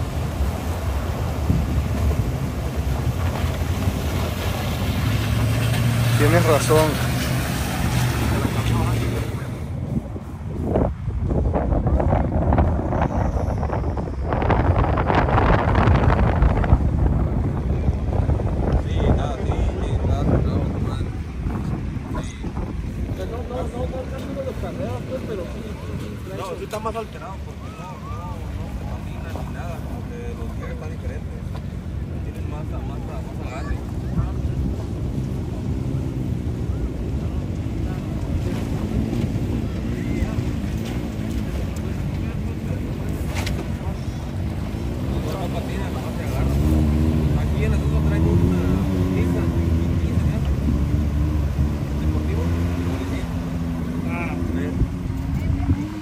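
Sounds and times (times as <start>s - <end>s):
pickup engines revving: 0.0s - 56.0s.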